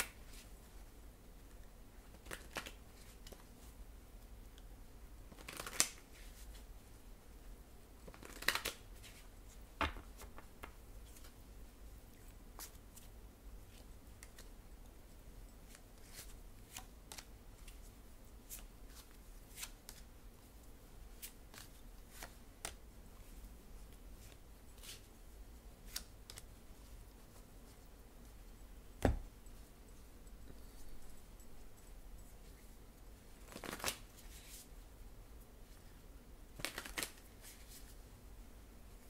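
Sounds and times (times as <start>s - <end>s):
cards being shuffled: 2.1s - 3.4s, 5.3s - 6.5s, 8.0s - 9.2s, 25.8s - 26.5s, 33.4s - 34.7s, 36.6s - 37.9s.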